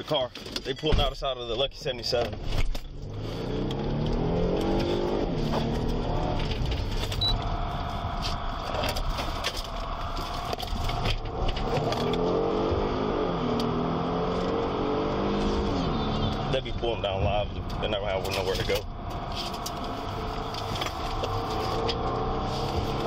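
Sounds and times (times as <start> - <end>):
car engine accelerating hard: 2.8 - 23.0.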